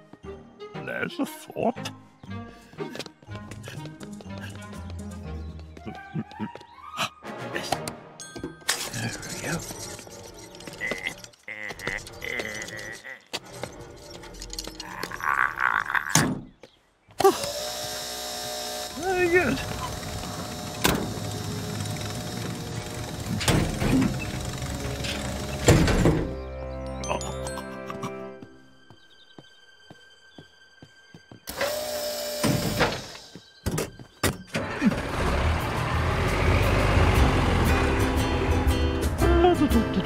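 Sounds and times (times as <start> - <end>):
cartoon background music: 0.0 - 15.6, 22.6 - 29.2, 33.7 - 40.0.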